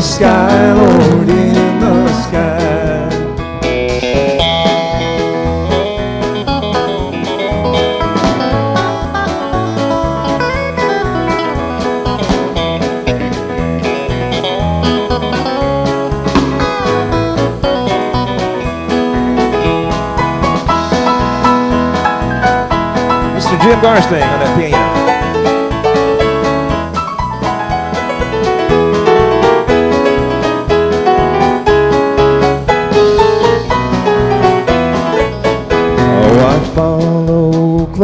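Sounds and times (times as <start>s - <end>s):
drum kit steady beat: 0.0s - 38.0s
electric bass: 0.0s - 38.0s
electric guitar leading: 0.0s - 38.0s
keyboard: 0.0s - 38.0s.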